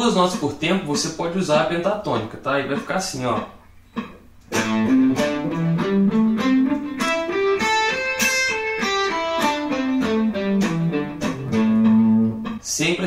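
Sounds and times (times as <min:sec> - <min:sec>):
electric guitar playing a scale: 0:03.9 - 0:12.6.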